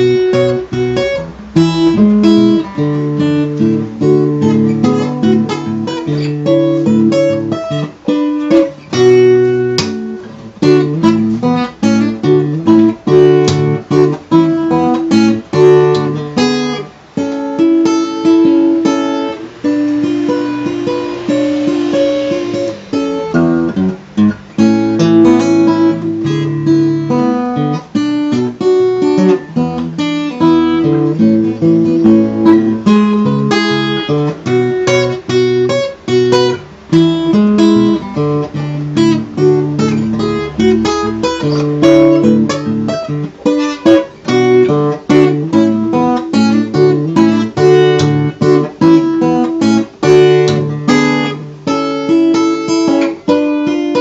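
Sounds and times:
fingerstyle acoustic guitar: 0.0 - 54.0.

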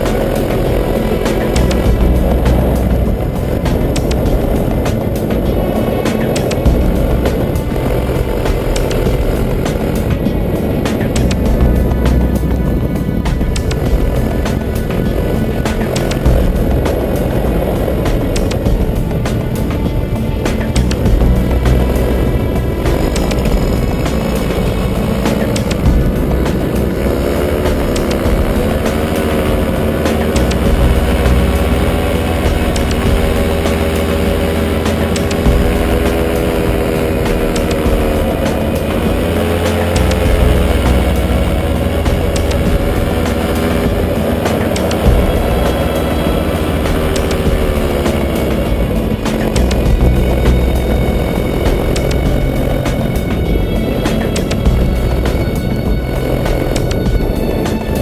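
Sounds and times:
paramotor engine and propeller: 0.0 - 58.0.

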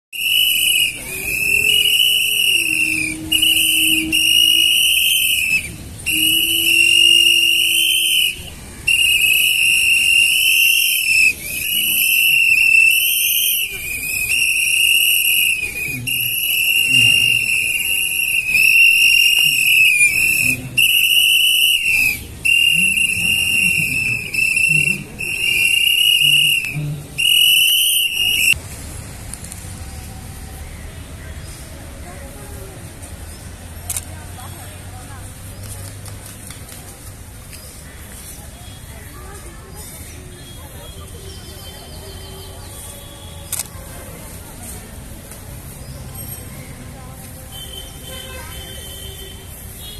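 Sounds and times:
shrill whistle blasts: 0.2 - 28.6.

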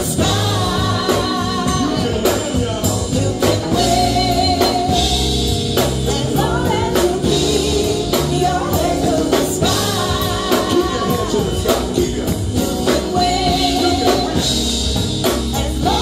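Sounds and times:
reggae band playing: 0.0 - 16.0
vocalists singing: 0.0 - 16.0.

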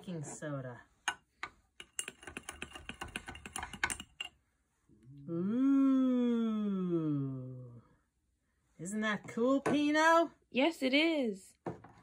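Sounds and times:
metal spoon clinking on glass jar: 1.8 - 4.4.

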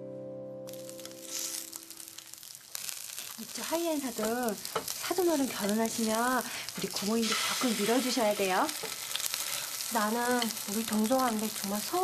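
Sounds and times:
background music: 0.0 - 2.2
food sizzling in a pan: 0.7 - 12.0.

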